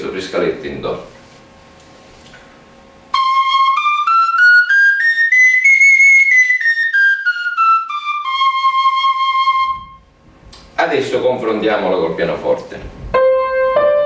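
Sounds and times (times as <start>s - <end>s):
duct flute playing a scale: 3.1s - 10.1s, 13.2s - 14.0s.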